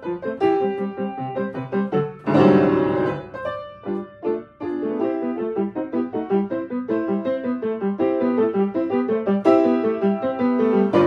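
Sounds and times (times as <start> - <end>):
loud piano chord: 0.0 - 11.0
upright piano playing: 0.0 - 11.0.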